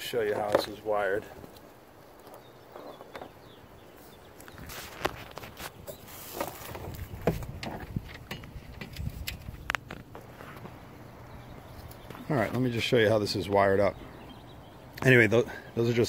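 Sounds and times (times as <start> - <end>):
footsteps and handling knocks: 4.4 - 10.9.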